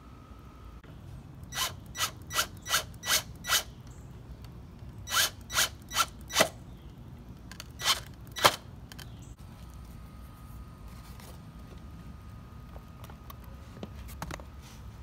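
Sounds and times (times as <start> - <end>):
cordless drill driving screw: 1.4 - 3.7, 5.1 - 6.5.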